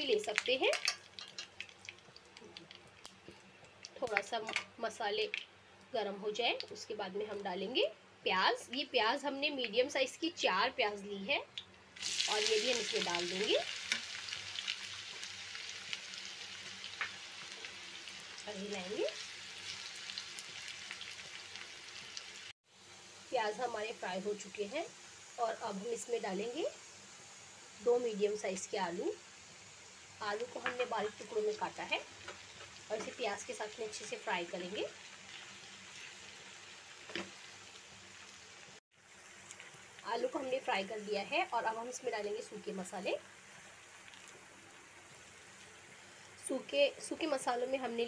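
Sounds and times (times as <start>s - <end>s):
onions sizzling in hot oil: 0.0s - 48.0s.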